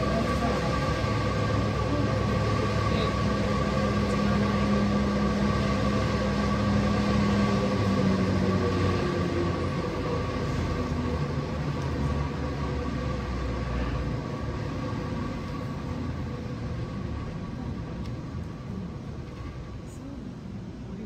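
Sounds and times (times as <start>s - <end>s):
ropeway machinery humming: 0.0s - 21.0s.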